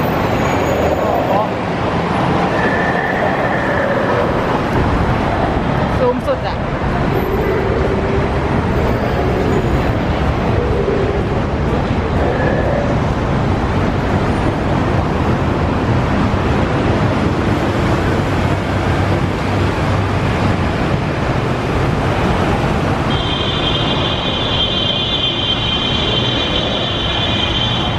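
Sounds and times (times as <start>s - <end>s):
road traffic rumble: 0.0s - 27.9s.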